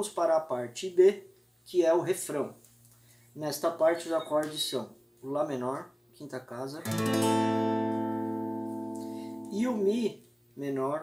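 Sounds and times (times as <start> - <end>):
acoustic guitar chord ringing: 6.8 - 10.0.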